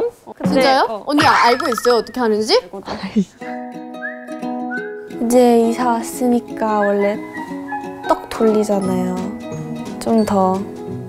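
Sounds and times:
whistled tune: 4.0s - 5.0s.

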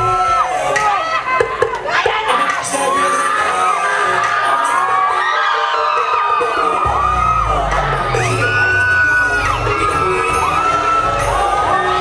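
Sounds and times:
crowd cheering and whooping: 0.0s - 12.0s
dance music with heavy bass: 0.0s - 12.0s.

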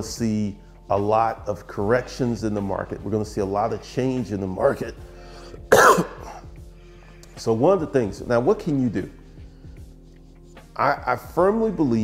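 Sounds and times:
quiet background music: 0.0s - 12.0s
man coughing: 5.7s - 6.5s.

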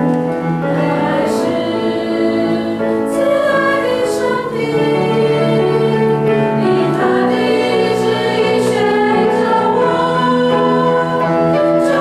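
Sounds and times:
choir singing a hymn: 0.2s - 12.0s.

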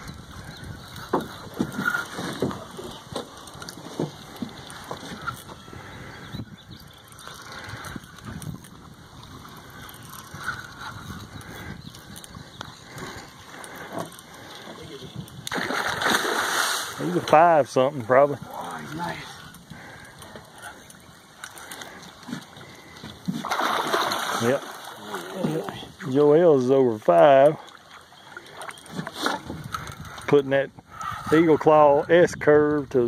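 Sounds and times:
water and boat noise: 0.0s - 33.0s
fish splashing at surface: 15.5s - 17.0s, 23.3s - 25.7s.

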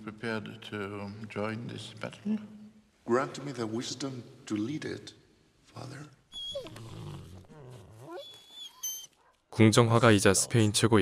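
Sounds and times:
dog whining: 6.3s - 9.4s.

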